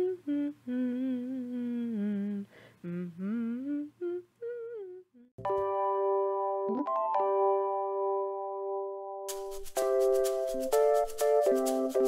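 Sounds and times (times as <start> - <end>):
person humming a wordless tune: 0.0 - 5.4
keyboard chord: 5.4 - 12.0.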